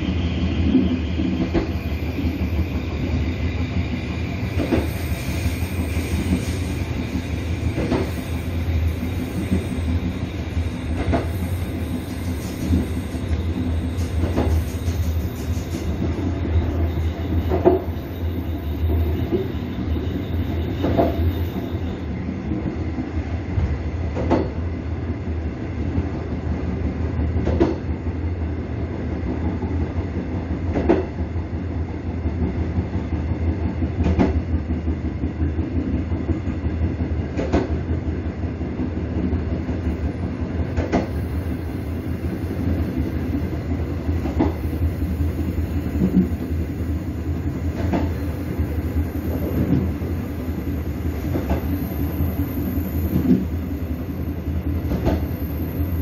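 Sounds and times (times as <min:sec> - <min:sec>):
train rumbling on track: 0:00.0 - 0:56.0.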